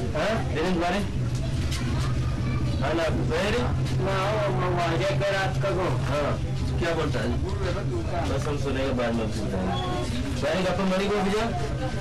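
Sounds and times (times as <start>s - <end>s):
low mechanical hum: 0.0s - 12.0s
men talking: 2.8s - 11.8s.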